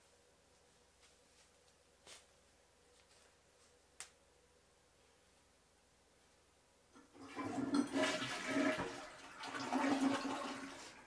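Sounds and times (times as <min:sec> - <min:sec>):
water rushing through plumbing: 0:07.0 - 0:11.0.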